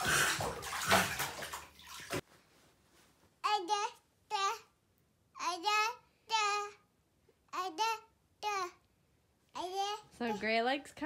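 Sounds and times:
toddler splashing water in bathtub: 0.0s - 2.2s.

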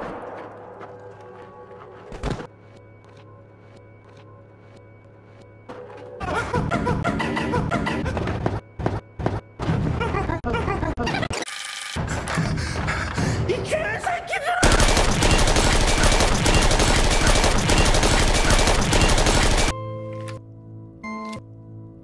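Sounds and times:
rapid automatic gunfire: 14.6s - 19.7s.

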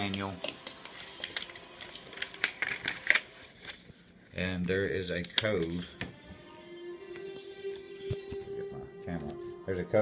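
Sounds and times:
paper rustling: 0.2s - 6.0s.

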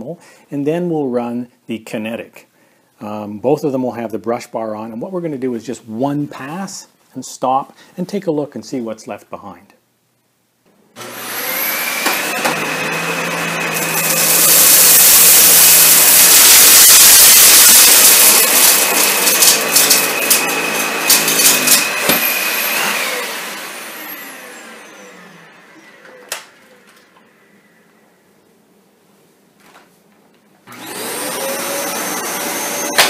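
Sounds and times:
upright vacuum cleaner running: 11.0s - 27.2s, 30.7s - 33.0s
debris rattling in vacuum: 11.8s - 24.0s.

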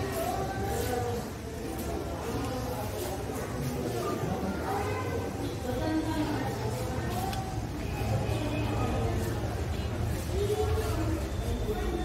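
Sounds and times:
distant chatter of voices: 0.0s - 12.0s.

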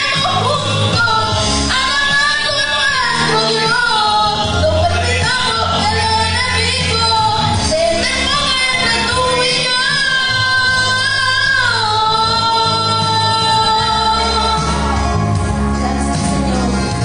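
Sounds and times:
instrumental accompaniment: 0.0s - 17.0s
woman singing through microphone: 0.0s - 17.0s.

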